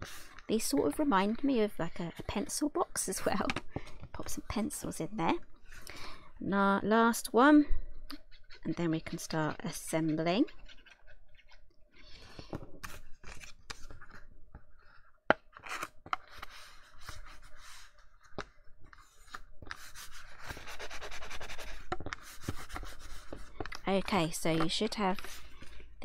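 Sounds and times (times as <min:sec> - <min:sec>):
card rustling and rubbing: 0:09.1 - 0:25.9.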